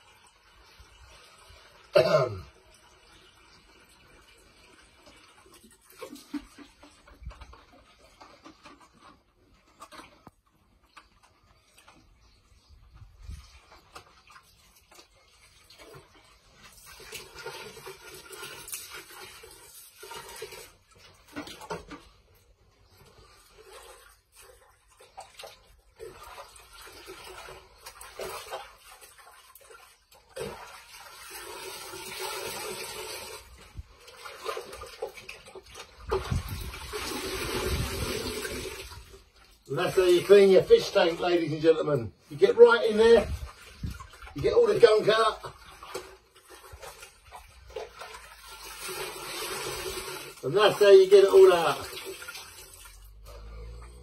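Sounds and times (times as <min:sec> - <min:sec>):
water pouring into a bucket: 0:00.0 - 0:54.0
water sloshing in a bucket: 0:00.0 - 0:54.0
hands scrubbing a pump underwater: 0:03.2 - 0:41.8, 0:42.4 - 0:53.0.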